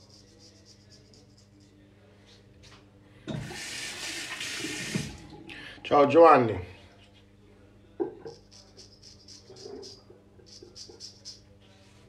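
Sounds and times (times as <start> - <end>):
water running from sink tap: 3.3 - 5.4.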